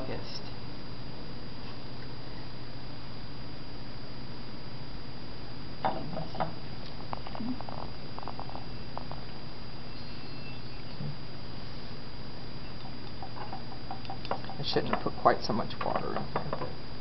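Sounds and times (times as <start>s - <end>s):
steady low hum: 0.0s - 17.0s
thin high whine: 0.0s - 17.0s.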